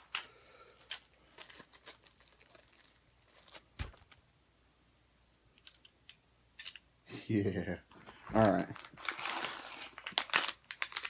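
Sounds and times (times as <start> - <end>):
fabric bag rustling: 1.1 - 4.2.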